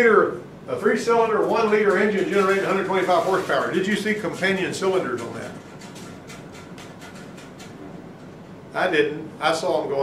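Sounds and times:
rapid high-pitched ticks: 4.9s - 7.8s.

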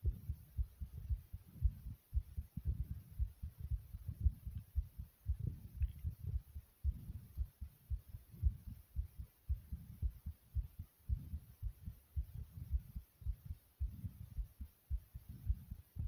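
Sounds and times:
rapid heartbeat thumps: 0.0s - 16.0s.

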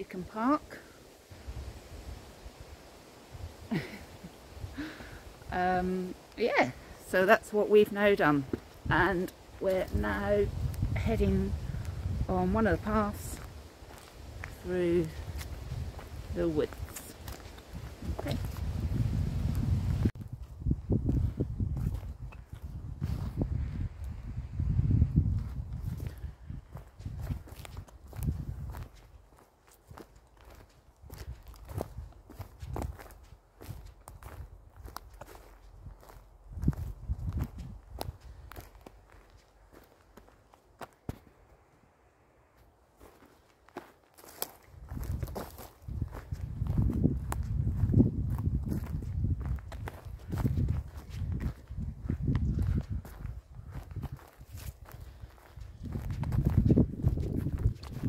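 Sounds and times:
wind rumble on microphone: 1.3s - 6.9s, 8.1s - 29.2s, 29.9s - 39.2s, 44.6s - 58.0s
footsteps crunching on dry litter: 5.3s - 24.2s, 25.2s - 41.4s, 42.6s - 58.0s.

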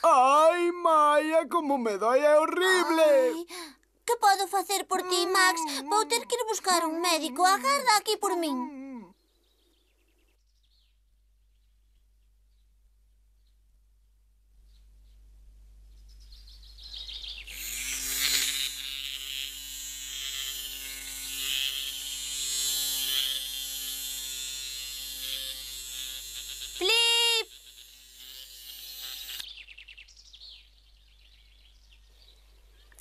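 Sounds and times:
cartoon bee buzzing: 4.2s - 8.8s, 17.4s - 29.5s.

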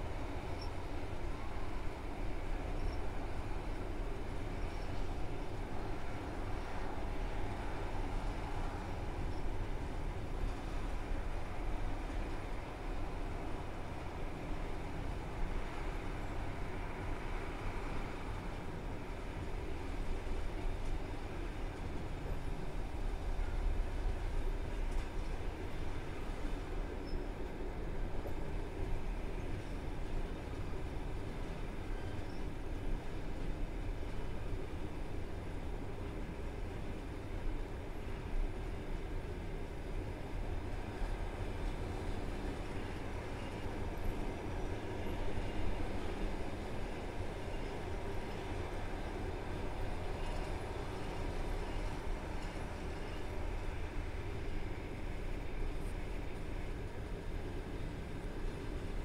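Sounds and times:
train wheels on rails: 0.0s - 59.0s.

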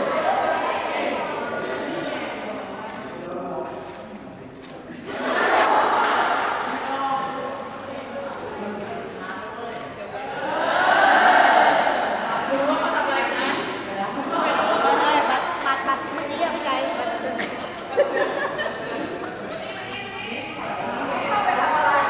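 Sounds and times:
people talking and calling out: 0.0s - 22.0s.

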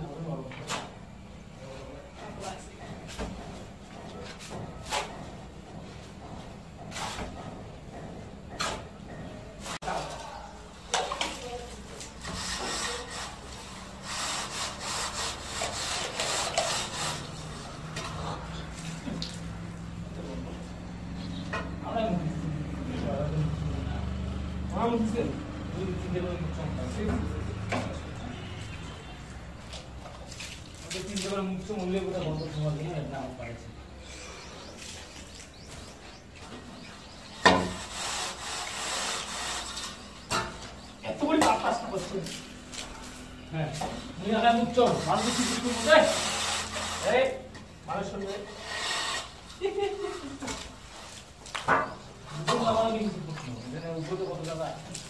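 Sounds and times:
straight-edge bar scraping wet plaster: 6.9s - 7.4s, 10.9s - 18.4s, 37.3s - 40.6s, 44.6s - 51.2s.

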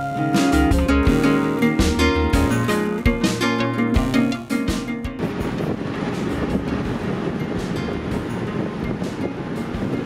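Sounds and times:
road and wind noise in vehicle: 0.0s - 10.0s.

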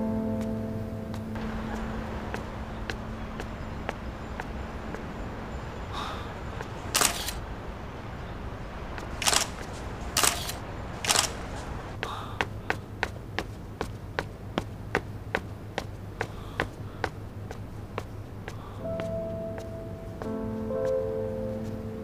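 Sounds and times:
footsteps on hard floor: 0.4s - 5.2s
camera shutter bursts: 6.9s - 7.4s, 9.2s - 11.7s.

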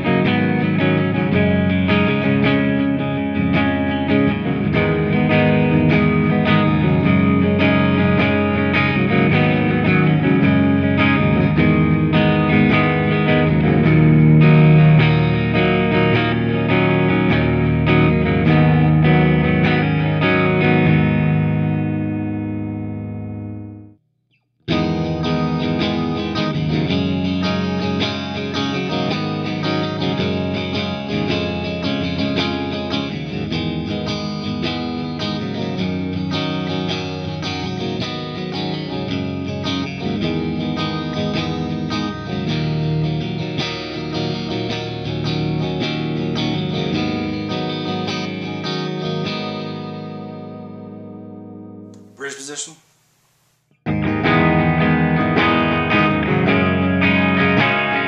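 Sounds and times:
electric guitar chords with delay: 0.0s - 24.0s, 24.7s - 52.0s, 53.9s - 58.0s.

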